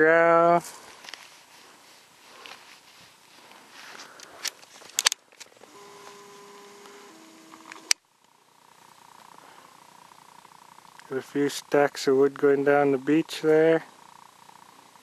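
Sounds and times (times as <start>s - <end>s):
faint steady hum: 0.0s - 15.0s
handling clicks: 4.0s - 6.2s, 6.8s - 8.0s
camcorder zoom motor whine: 5.4s - 11.0s.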